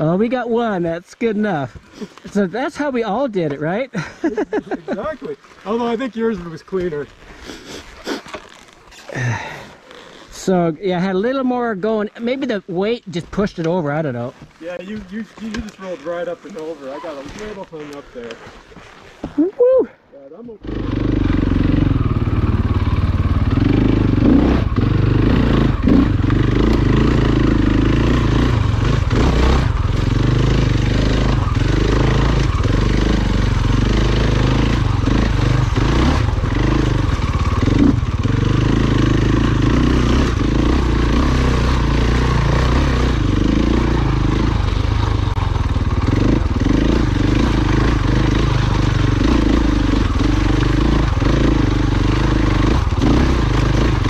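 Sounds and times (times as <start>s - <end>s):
dirt bike engine revving: 20.6s - 54.0s.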